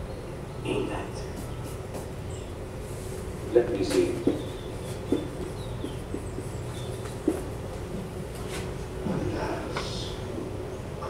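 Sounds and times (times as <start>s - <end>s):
low soundtrack hum through speakers: 0.0s - 11.0s
soft knocks: 3.8s - 7.6s.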